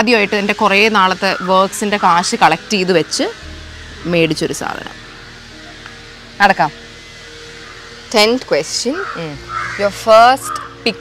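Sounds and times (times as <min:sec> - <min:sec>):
crow cawing: 0:01.2 - 0:02.3, 0:07.3 - 0:11.0.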